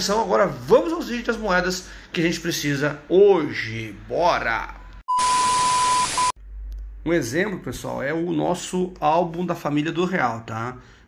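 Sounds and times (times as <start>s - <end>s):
high beep tone: 4.8s - 6.4s.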